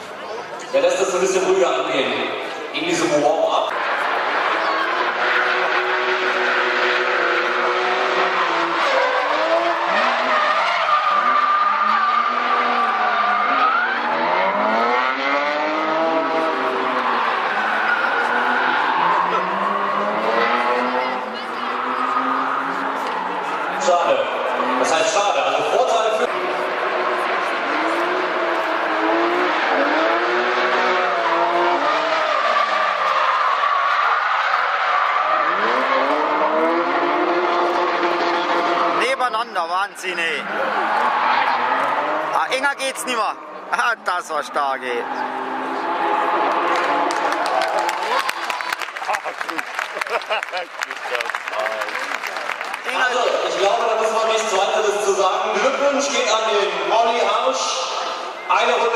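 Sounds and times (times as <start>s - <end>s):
car engines revving: 0.0s - 58.9s.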